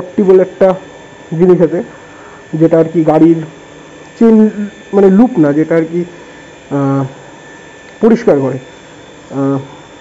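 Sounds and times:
faint electrical hum: 0.0 - 10.0
man saying uh: 6.7 - 7.2, 9.3 - 9.8.

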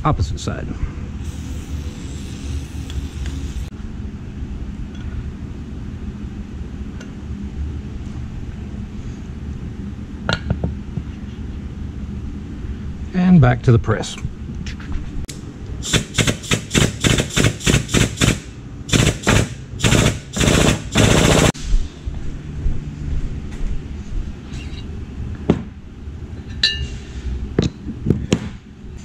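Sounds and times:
shop press noisy bursts: 15.8 - 21.6.

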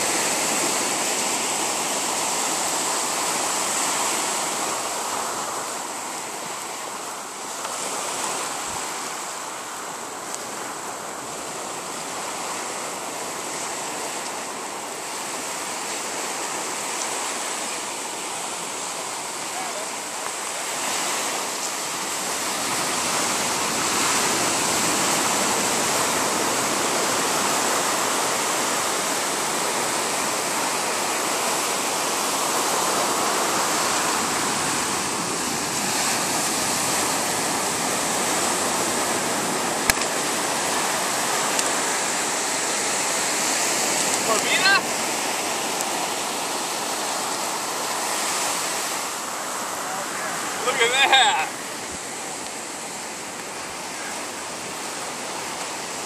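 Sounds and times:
surf washing up a beach: 0.0 - 56.0.

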